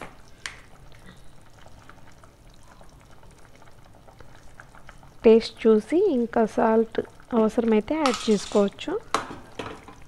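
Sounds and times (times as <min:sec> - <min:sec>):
pot bubbling and popping: 0:00.0 - 0:10.0.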